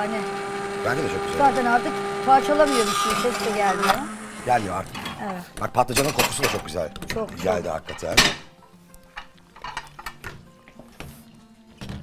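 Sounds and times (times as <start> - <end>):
kitchenware clinking: 4.6 - 8.6, 9.2 - 10.5.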